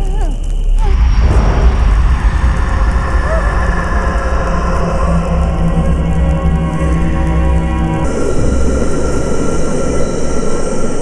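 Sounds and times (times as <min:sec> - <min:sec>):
hissing whoosh: 0:00.8 - 0:11.0
loud low rumble drone: 0:00.8 - 0:11.0.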